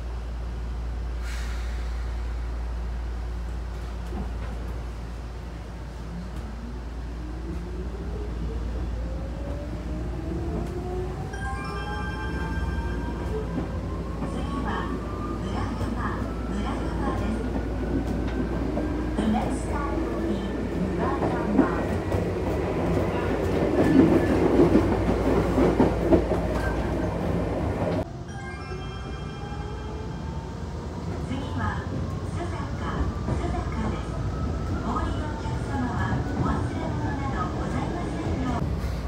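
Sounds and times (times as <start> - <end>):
train low rumble: 0.0 - 39.0.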